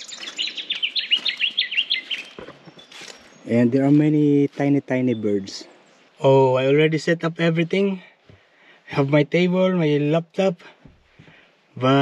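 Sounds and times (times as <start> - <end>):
small bird singing rapid notes: 0.0 - 4.0.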